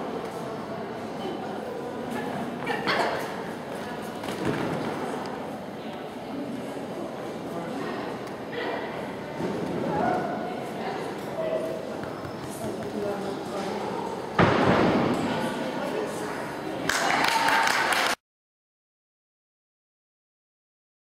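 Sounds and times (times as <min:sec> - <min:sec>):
voices echoing in hall: 0:00.0 - 0:18.1
loud thud: 0:14.4 - 0:15.3.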